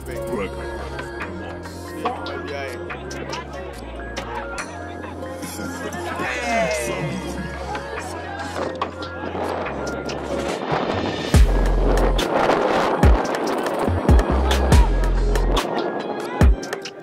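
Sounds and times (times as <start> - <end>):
music with deep bass and drums: 0.0 - 17.0.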